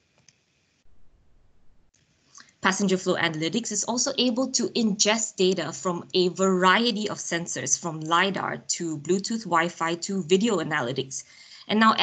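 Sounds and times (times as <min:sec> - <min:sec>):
low rumble: 0:00.8 - 0:01.9.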